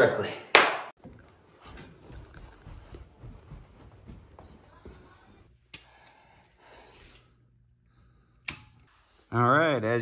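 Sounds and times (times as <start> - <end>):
faint footsteps: 1.0 - 6.9.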